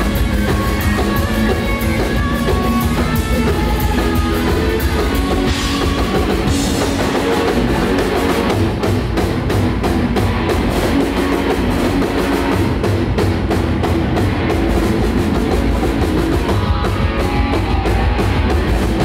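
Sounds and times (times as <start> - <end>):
electric guitars: 0.0 - 19.0.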